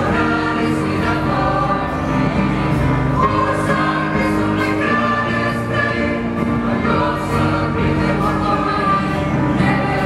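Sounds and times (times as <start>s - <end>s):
keyboard: 0.0s - 10.0s
mixed choir singing: 0.0s - 10.0s.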